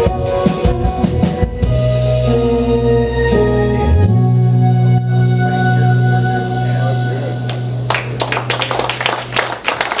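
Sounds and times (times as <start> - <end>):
audience clapping: 7.5 - 10.0.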